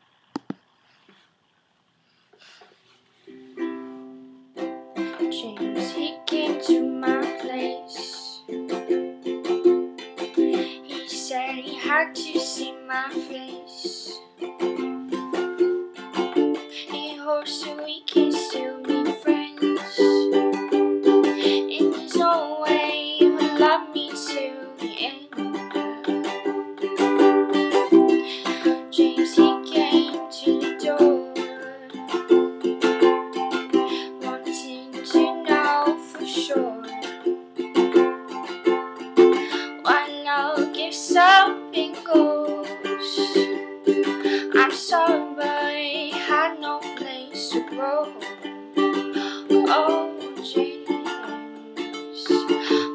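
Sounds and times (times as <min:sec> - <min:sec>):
ukulele strumming chords: 0:03.2 - 0:52.9.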